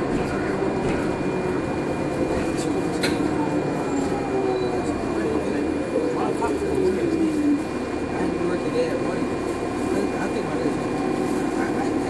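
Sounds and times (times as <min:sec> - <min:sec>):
bus drivetrain whine falling: 0:00.0 - 0:12.0
low drivetrain hum: 0:00.0 - 0:12.0.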